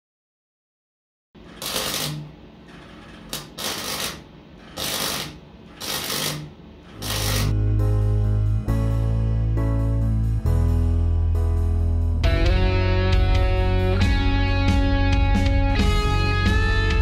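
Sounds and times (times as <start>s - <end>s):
welder arc noise: 1.4s - 7.6s
music with heavy bass: 7.2s - 17.0s.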